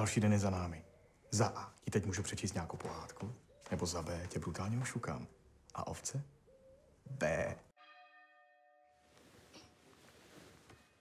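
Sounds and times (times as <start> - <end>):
bell-like chime: 7.8 - 9.8.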